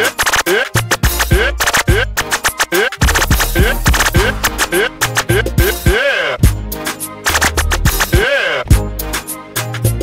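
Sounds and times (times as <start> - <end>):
dj scratching: 0.0 - 6.4, 7.3 - 8.6
song with deep bass line: 3.0 - 10.0.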